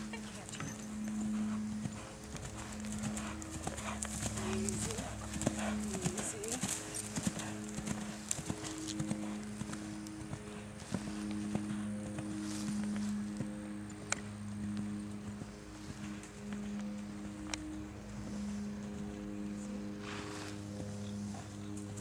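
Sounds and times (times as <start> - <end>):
horse hoofbeats on dirt: 0.0 - 13.6.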